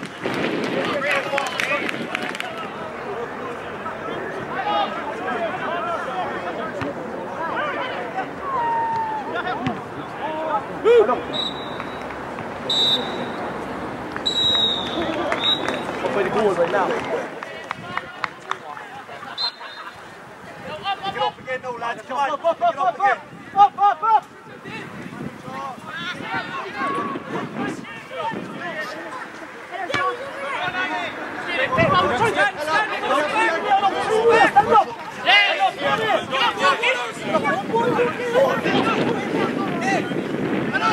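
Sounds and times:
people calling out and chattering: 0.0 - 40.9
players shouting: 0.8 - 40.9
referee's whistle blasts: 11.3 - 12.0, 12.7 - 13.4, 14.2 - 15.8, 19.4 - 19.9.

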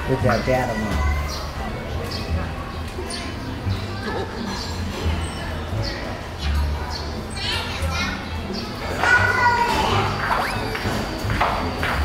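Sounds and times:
voices: 0.0 - 12.0
child's high voice: 7.4 - 10.8.

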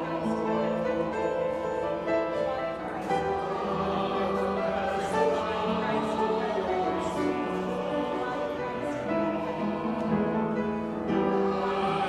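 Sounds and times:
congregation and choir singing hymn: 0.0 - 12.0.

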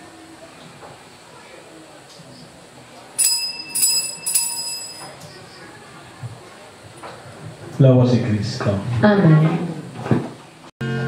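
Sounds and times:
altar bell ringing: 3.2 - 5.4.

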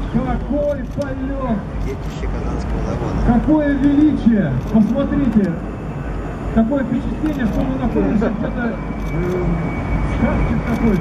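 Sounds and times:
jet engine rumble: 0.0 - 11.0.

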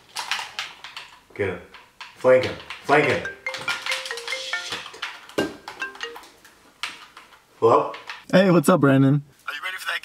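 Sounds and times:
marimba phone ringtone: 3.0 - 6.4.

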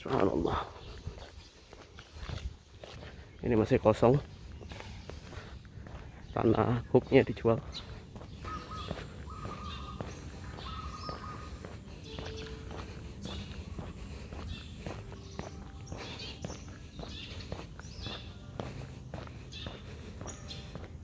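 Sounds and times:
footsteps on brick paving: 0.0 - 21.0.

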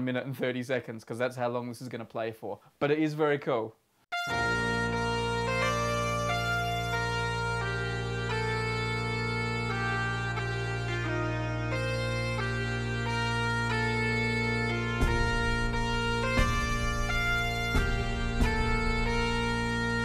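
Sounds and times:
bagpipe music: 4.1 - 20.0
low thumping beat: 12.6 - 20.0.

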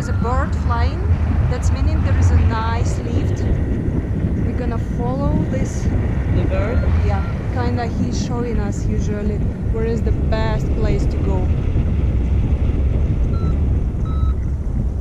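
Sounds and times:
people talking: 0.0 - 3.6, 4.4 - 11.5
wind rumbling on microphone: 0.0 - 15.0.

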